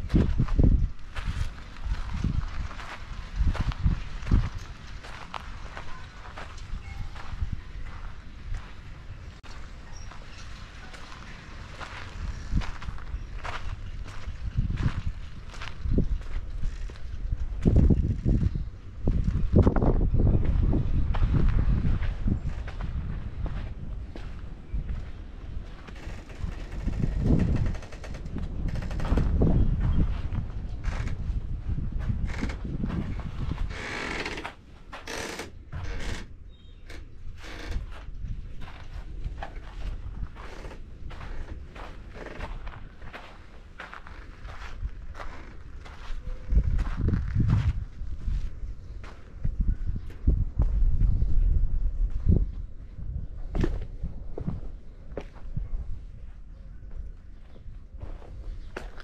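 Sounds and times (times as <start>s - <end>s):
footsteps crunching on sandy ground: 0.0s - 35.4s, 37.4s - 49.7s, 56.3s - 59.0s
wind buffeting microphone: 0.0s - 59.0s.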